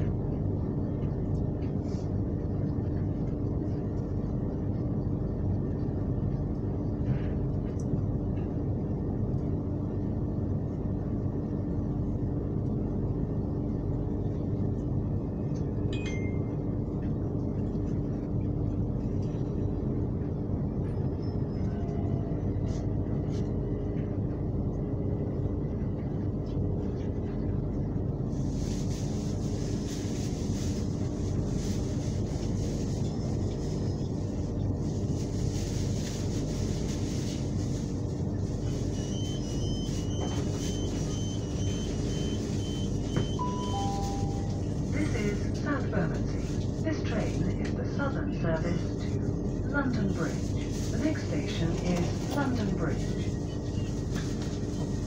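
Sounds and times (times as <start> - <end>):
train wheels and motors rumbling: 0.0 - 55.0
falling two-note chime: 43.4 - 44.6.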